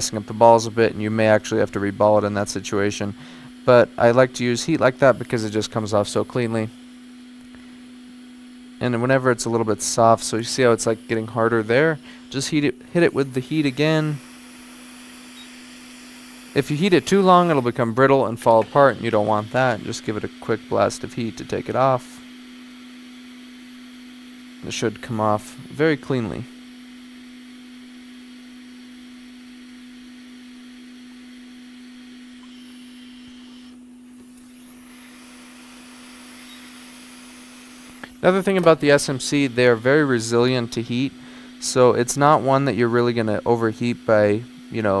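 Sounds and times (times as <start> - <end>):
low steady hum: 0.0 - 45.0
hot air nozzle hissing: 9.8 - 21.0, 34.4 - 39.8.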